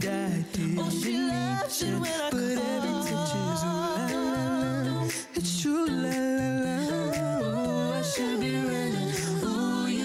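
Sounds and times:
women singing in close harmony: 0:00.6 - 0:10.0.

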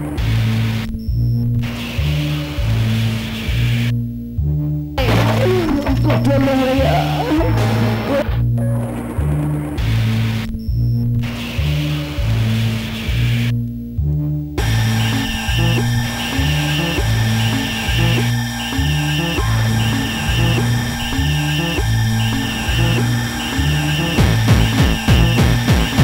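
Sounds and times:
experimental electronic music: 0:05.0 - 0:10.4, 0:14.6 - 0:26.0.

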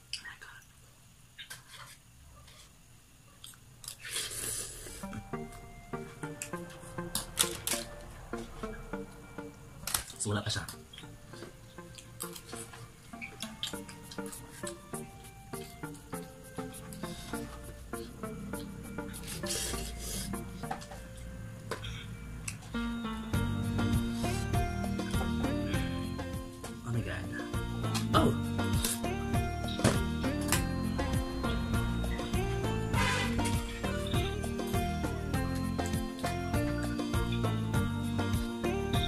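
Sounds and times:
person slurping noodles: 0:04.0 - 0:05.1
background music: 0:04.8 - 0:39.0.

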